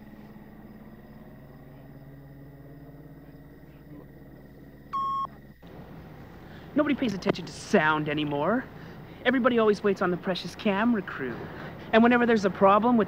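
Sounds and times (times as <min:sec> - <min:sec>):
steady low hum: 0:00.0 - 0:13.0
short electronic beep: 0:05.0 - 0:05.3.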